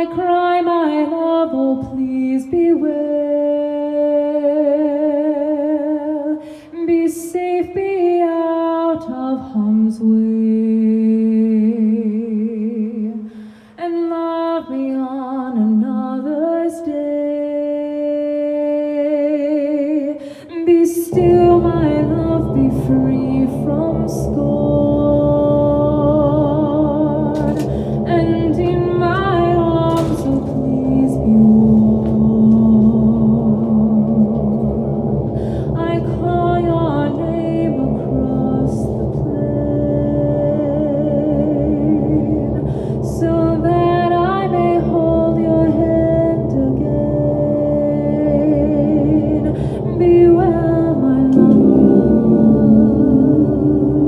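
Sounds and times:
woman singing with vibrato: 0:00.0 - 0:13.2, 0:13.8 - 0:54.0
low droning accompaniment: 0:17.9 - 0:54.0.

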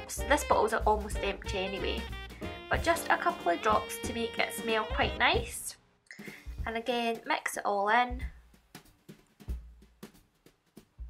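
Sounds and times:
soft low thuds: 0:06.4 - 0:06.8, 0:08.1 - 0:08.7.

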